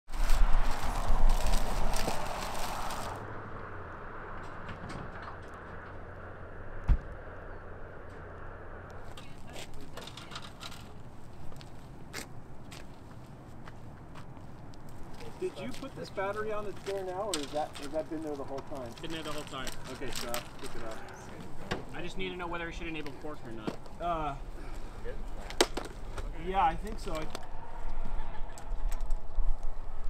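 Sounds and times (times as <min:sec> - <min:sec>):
deep rumble: 0:00.1 - 0:11.5
thump: 0:06.8 - 0:07.1.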